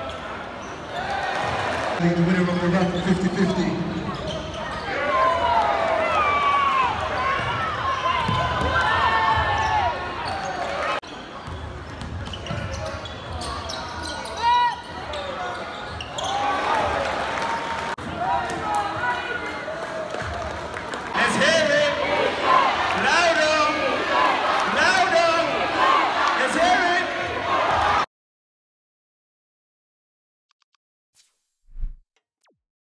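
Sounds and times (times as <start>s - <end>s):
sneakers squeaking: 0.0s - 1.7s, 2.6s - 5.1s, 7.3s - 17.0s
basketball bouncing on court: 6.9s - 10.4s, 11.4s - 13.5s.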